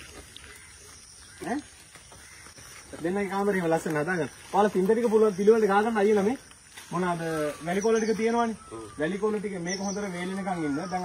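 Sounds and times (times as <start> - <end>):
people talking: 3.0 - 11.0.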